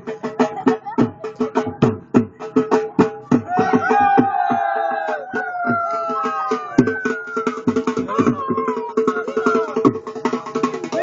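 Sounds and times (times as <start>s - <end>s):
drum beaten in quick rhythm: 0.0s - 11.0s.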